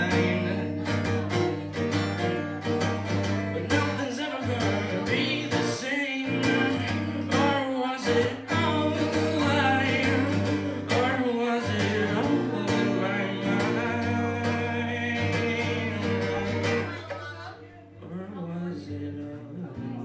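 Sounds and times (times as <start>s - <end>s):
acoustic guitar strumming: 0.0s - 20.0s
man singing: 0.0s - 20.0s.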